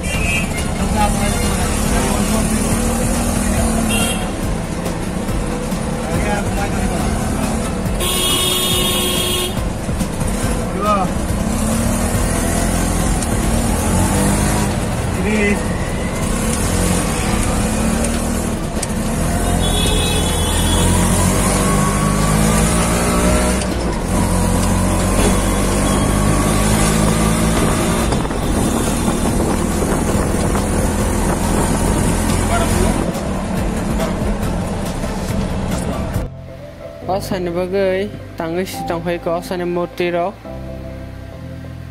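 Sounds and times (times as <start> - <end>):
vehicle horn: 0.0 - 0.7, 3.8 - 4.4, 8.0 - 9.7, 19.4 - 21.4
auto-rickshaw engine running: 0.0 - 36.4.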